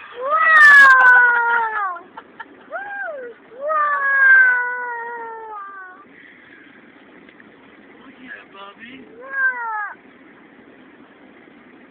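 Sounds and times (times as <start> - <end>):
boy wailing: 0.2 - 2.0, 2.7 - 6.1, 9.1 - 10.0.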